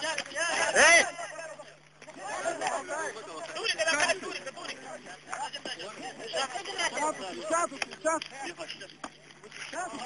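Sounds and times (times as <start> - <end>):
people calling out: 0.0 - 8.8.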